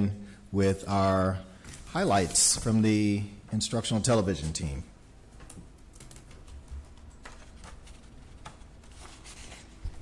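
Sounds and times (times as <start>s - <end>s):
laptop keys typing: 5.5s - 8.7s.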